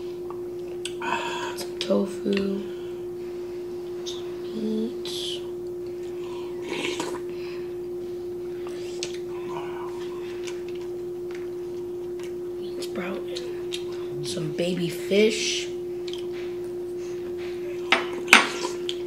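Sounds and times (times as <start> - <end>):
steady hum tone: 0.0 - 19.0
person humming mm: 0.8 - 1.8, 5.2 - 7.4, 8.5 - 10.6
chewing: 10.0 - 12.4, 16.0 - 16.8.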